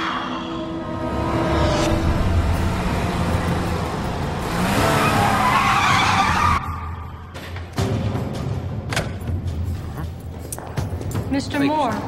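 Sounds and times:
sports car engine: 1.1 - 6.6.

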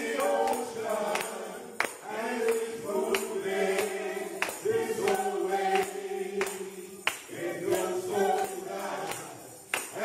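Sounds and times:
hand claps: 0.0 - 10.0
men singing gospel in harmony: 0.0 - 10.0.

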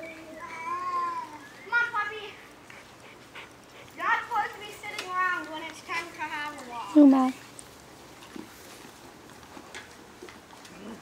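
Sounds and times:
young child calling: 0.0 - 2.4.

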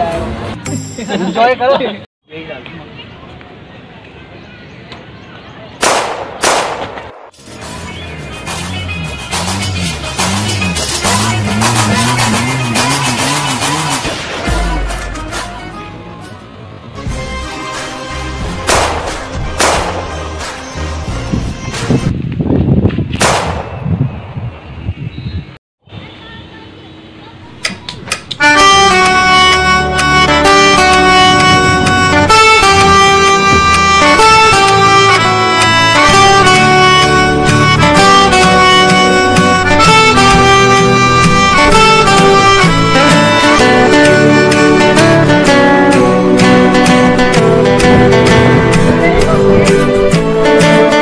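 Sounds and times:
loud gunshot: 5.8 - 7.3, 18.7 - 20.2, 23.2 - 23.9.

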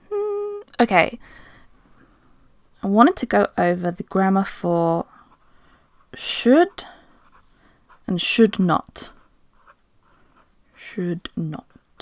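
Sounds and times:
pen scratching on paper: 9.0 - 10.5.

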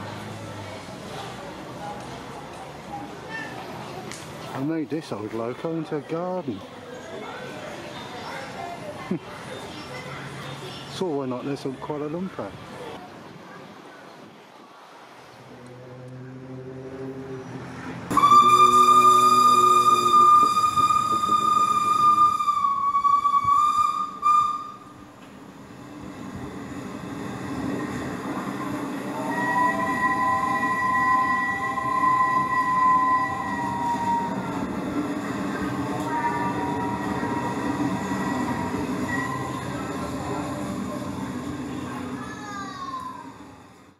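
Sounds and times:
train rumbling: 14.9 - 43.9
train whistle blasts: 15.5 - 17.4, 18.1 - 25.0, 29.1 - 34.7, 35.8 - 40.4
chord-like train horn: 15.5 - 24.9, 29.1 - 34.7, 35.8 - 40.7.

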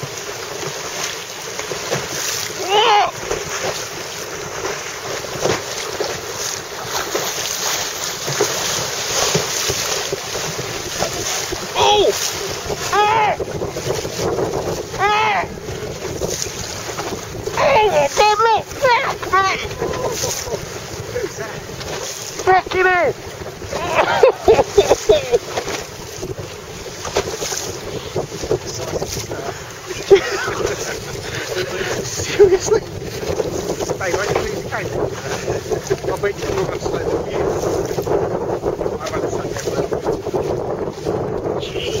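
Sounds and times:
choppy water rushing: 0.0 - 42.0
wind buffeting microphone: 0.0 - 42.0
person exclaiming: 2.6 - 3.2, 11.7 - 12.2, 12.9 - 13.4, 15.0 - 15.5, 17.6 - 20.6, 23.7 - 25.4
person laughing: 23.7 - 25.5, 29.9 - 32.6.

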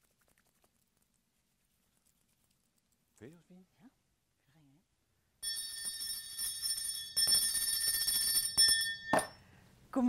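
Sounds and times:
brass handbell ringing rapidly: 5.4 - 9.4.

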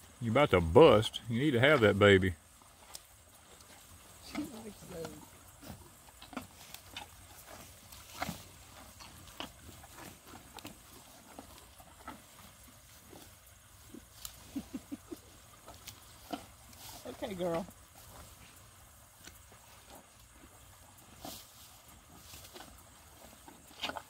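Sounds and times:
cow chewing crunchily: 0.0 - 24.0.

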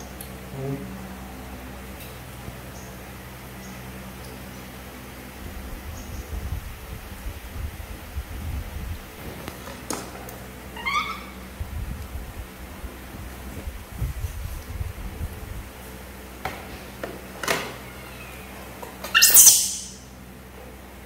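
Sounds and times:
macaque squeaky call: 10.8 - 11.4, 19.1 - 20.1.

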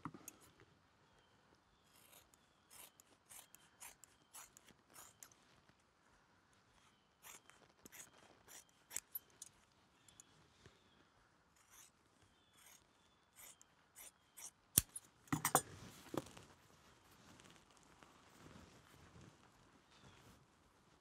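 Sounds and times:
scissors snipping leather: 1.9 - 5.3, 7.2 - 9.5, 13.4 - 15.6.

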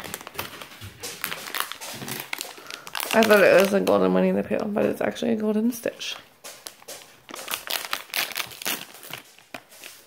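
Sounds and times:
plastic wrapping crinkling: 0.0 - 5.2, 6.1 - 10.0.

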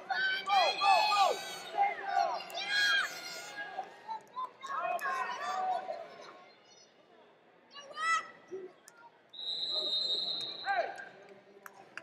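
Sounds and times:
people shouting: 0.1 - 3.3
referee whistle blast: 9.4 - 10.8.

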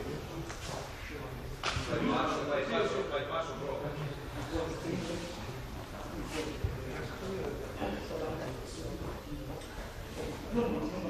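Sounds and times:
gym hall commotion: 0.0 - 11.0.

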